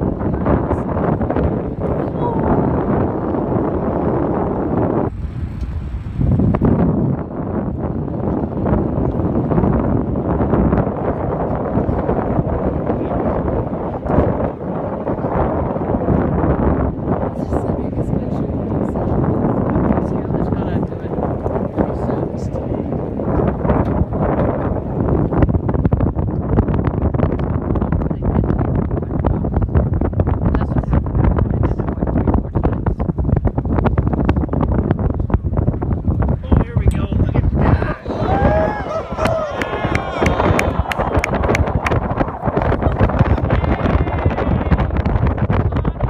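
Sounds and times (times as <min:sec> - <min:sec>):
wind buffeting microphone: 0:00.0 - 0:46.0
voices exclaiming: 0:37.6 - 0:41.5.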